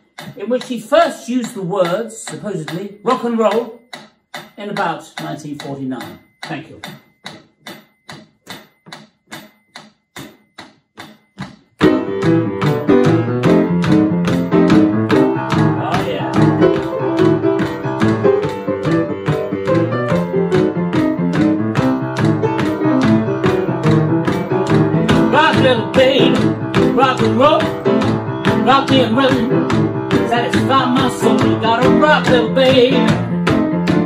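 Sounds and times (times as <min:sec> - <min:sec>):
steady ticking beat: 0:00.0 - 0:34.0
boogie-woogie piano: 0:11.8 - 0:34.0.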